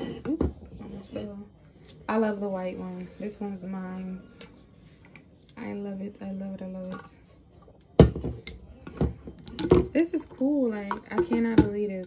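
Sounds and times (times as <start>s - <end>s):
tumbler knocks and clunks: 8.0s - 12.0s.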